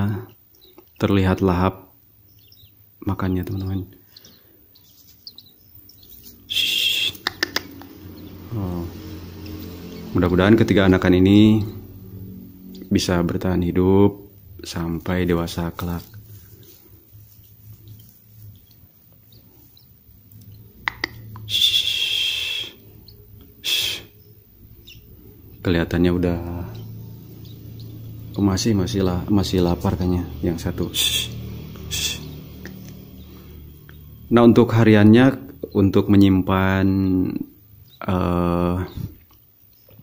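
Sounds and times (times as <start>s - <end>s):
faint high chirps of nestlings: 0.0s - 40.0s
chick buzzy begging calls: 6.1s - 8.3s, 20.8s - 24.2s
loud high-pitched begging call: 6.5s - 7.6s, 21.4s - 22.8s.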